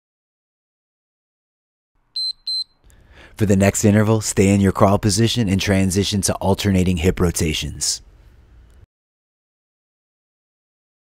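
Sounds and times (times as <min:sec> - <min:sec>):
high electronic timer beeps: 0:02.2 - 0:02.8.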